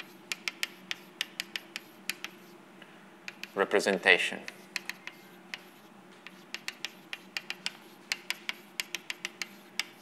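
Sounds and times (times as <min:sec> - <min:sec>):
chalk tapping and scraping on blackboard: 0:00.0 - 0:02.6, 0:03.3 - 0:10.0
faint room hum: 0:00.0 - 0:10.0.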